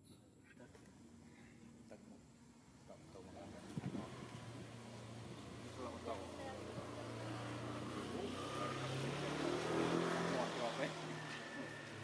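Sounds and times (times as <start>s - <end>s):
vehicle engine hum: 2.4s - 12.0s.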